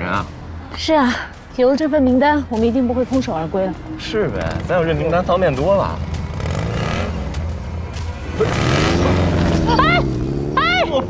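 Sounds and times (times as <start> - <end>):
motor scooter passing: 4.0 - 11.0.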